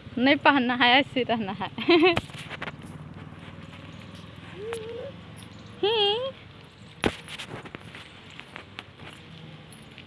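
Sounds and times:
footsteps on gravel: 2.2 - 4.9.

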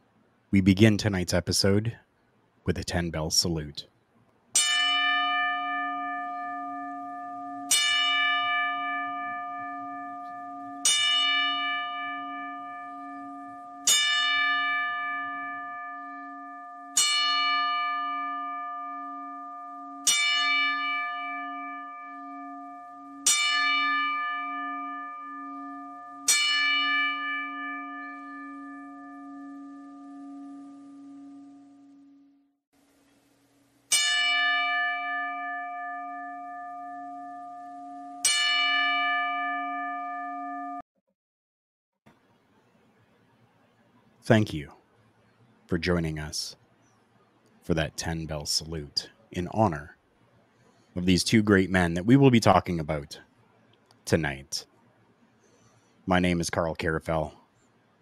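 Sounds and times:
bell ringing: 4.6 - 32.4, 33.9 - 40.8.

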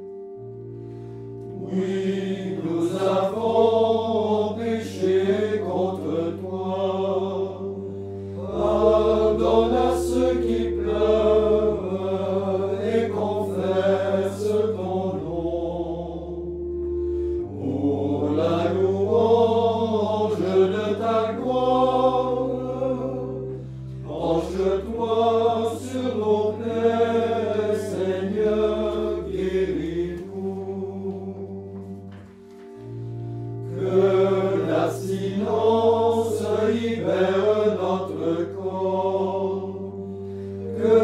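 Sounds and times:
low held notes: 0.0 - 41.0
men's choir chanting: 1.6 - 7.7, 8.4 - 16.0, 24.1 - 31.4, 33.7 - 39.9.

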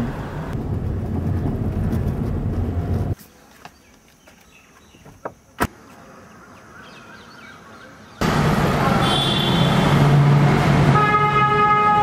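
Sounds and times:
heavy road traffic: 0.0 - 3.5, 5.4 - 12.0.

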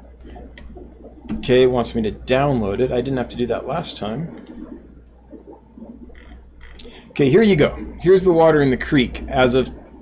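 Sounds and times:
low electrical hum: 0.0 - 10.0
computer mouse clicking: 0.2 - 0.7.

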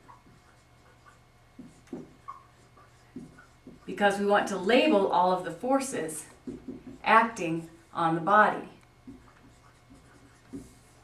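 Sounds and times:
marker scratching on whiteboard: 0.0 - 5.0, 6.2 - 8.1, 9.0 - 11.0.

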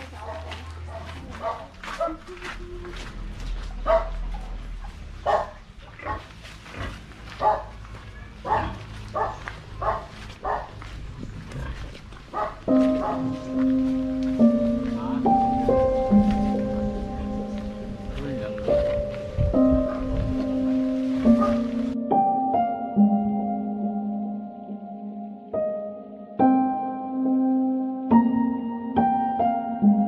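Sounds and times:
dog barking: 0.2 - 2.4, 3.8 - 4.5, 5.2 - 6.3, 7.4 - 7.8, 8.4 - 10.8, 12.3 - 13.4, 21.3 - 21.8
music with held notes: 12.7 - 30.0.

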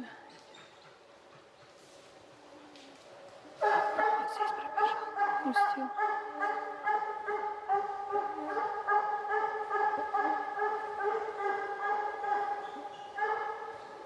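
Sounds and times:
hounds baying: 3.6 - 14.0.

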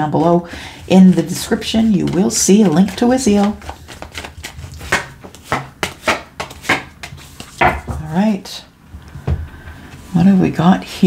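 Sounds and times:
cards flicking and slapping: 2.0 - 7.8.

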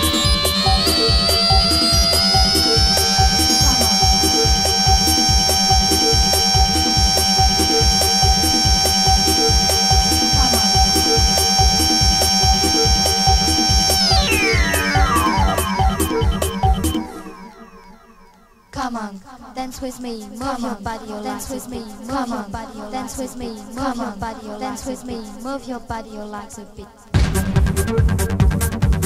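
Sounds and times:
high held synth tone: 0.0 - 18.8
four-on-the-floor kick drum: 27.2 - 29.0.

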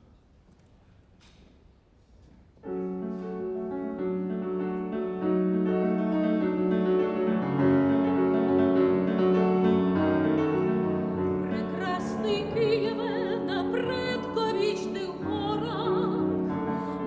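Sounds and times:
grand piano chords: 2.6 - 17.0.

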